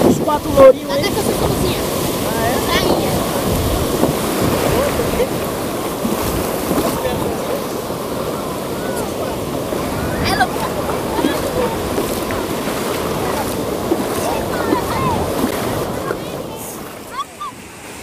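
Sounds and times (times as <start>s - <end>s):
wind rumbling on microphone: 0.0s - 17.0s
faint voices: 0.0s - 17.7s
sea surf washing: 0.0s - 18.0s.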